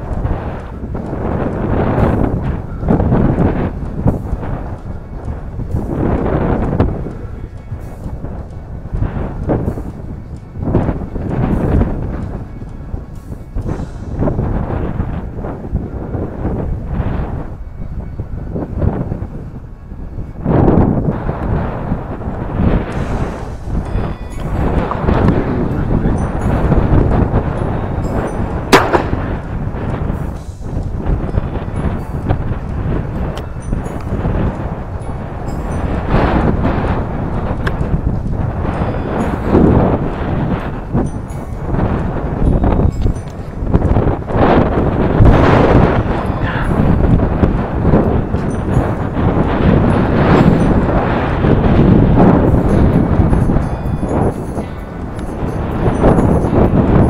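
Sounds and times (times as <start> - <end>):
wind buffeting microphone: 0.0 - 57.0
sharp crack: 28.7 - 30.0.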